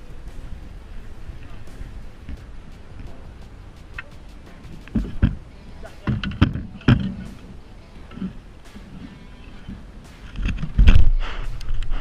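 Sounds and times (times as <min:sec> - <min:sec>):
wind rumble on microphone: 0:09.6 - 0:12.0.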